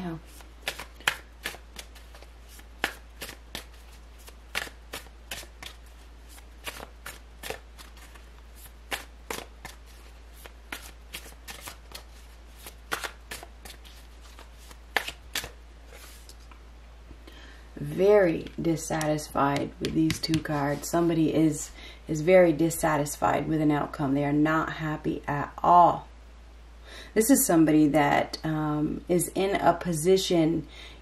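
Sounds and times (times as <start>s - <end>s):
cards being shuffled: 0.2s - 16.6s, 18.4s - 20.9s.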